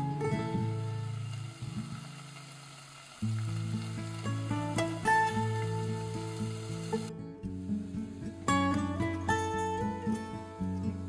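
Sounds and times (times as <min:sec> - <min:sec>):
vegetables sizzling in oil: 0:00.0 - 0:10.1
background music: 0:03.4 - 0:11.0.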